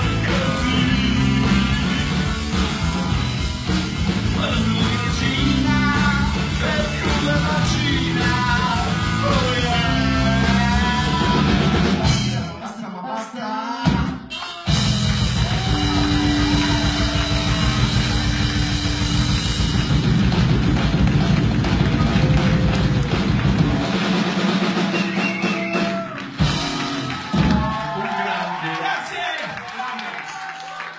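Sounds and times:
rock band playing live: 0:00.0 - 0:12.8, 0:13.8 - 0:28.2.

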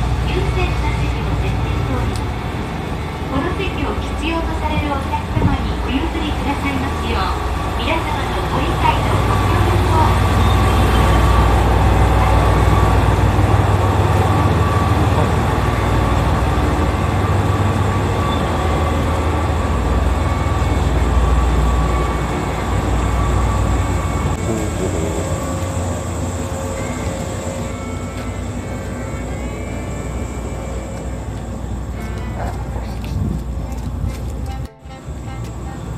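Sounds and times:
train wheels rumbling past: 0:00.0 - 0:35.9.

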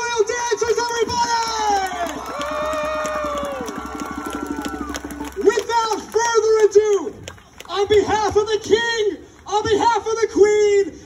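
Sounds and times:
audience clapping: 0:00.4 - 0:08.4
crowd whooping: 0:01.4 - 0:05.6.

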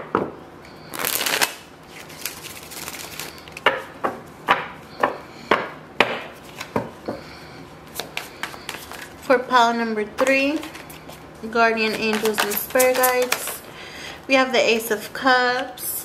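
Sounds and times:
cards sliding: 0:00.9 - 0:03.6.

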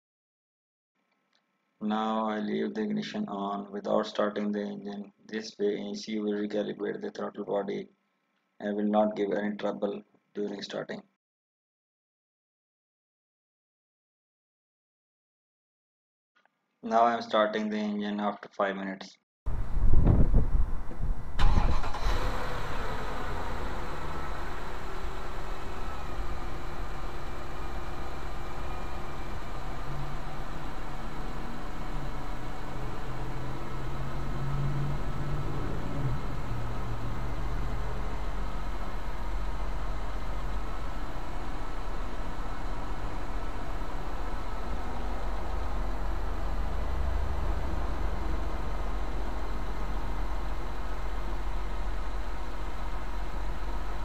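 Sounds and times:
car engine idling: 0:21.4 - 0:54.0.

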